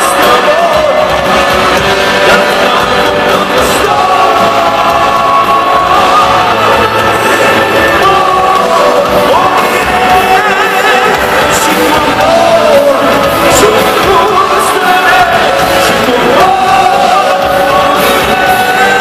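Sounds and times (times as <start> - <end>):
bass guitar: 0.0 - 19.0
distorted electric guitars: 0.0 - 19.0
drum kit: 0.0 - 19.0
wavering lead vocal line: 0.0 - 19.0.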